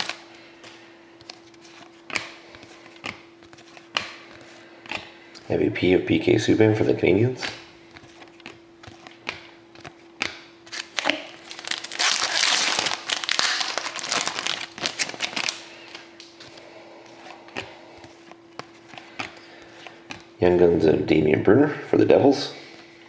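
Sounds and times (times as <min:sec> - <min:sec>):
wrapper crinkling: 0:00.0 - 0:00.2, 0:10.7 - 0:16.3
trading cards flipped: 0:00.0 - 0:05.1.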